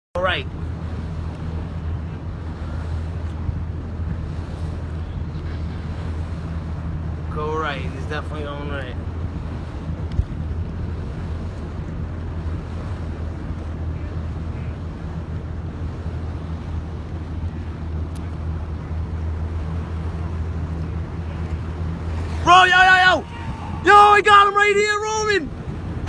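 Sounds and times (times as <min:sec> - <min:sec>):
boat engine droning: 0:00.2 - 0:26.0
wind noise on microphone: 0:08.2 - 0:22.5, 0:23.1 - 0:24.4.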